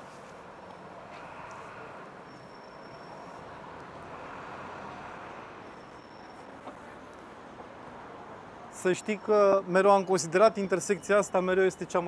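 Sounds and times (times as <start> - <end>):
city street traffic hum: 0.0 - 12.0.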